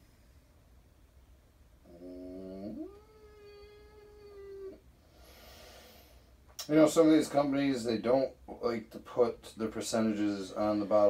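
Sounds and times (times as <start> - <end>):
cat yowling: 2.0 - 4.8.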